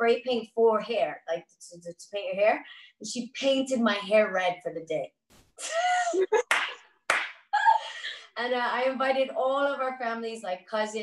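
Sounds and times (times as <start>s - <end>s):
women laughing: 5.6s - 6.5s.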